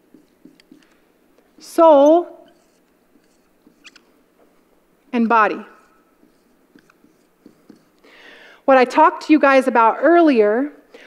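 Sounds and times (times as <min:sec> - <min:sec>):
marker squeaking on whiteboard: 0:00.0 - 0:00.9, 0:01.8 - 0:04.2, 0:05.2 - 0:08.0.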